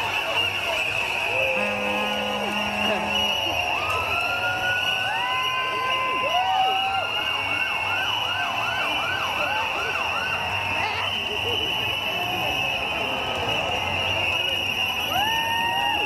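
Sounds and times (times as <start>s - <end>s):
crowd din: 0.0s - 16.0s
siren wailing: 1.3s - 10.6s.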